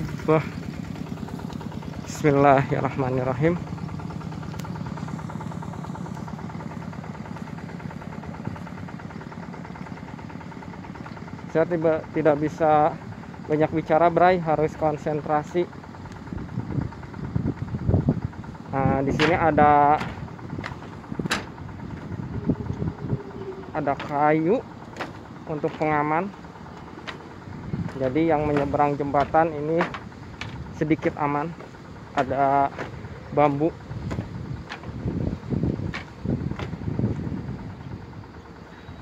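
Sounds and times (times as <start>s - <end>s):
low steady rumble: 0.0s - 39.0s
wind buffeting microphone: 16.2s - 38.4s
footsteps on wooden planks: 20.0s - 22.1s, 24.8s - 25.9s, 26.7s - 33.1s, 34.0s - 35.0s, 35.9s - 37.2s.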